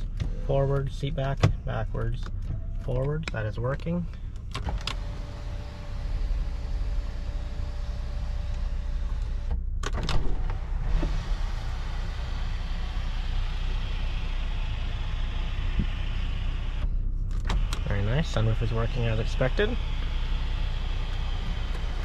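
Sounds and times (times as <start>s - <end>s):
low steady rumble: 0.0s - 22.0s
rushing whir of sunroof opening: 4.6s - 22.0s
electric motor whine: 10.3s - 16.9s, 17.5s - 22.0s.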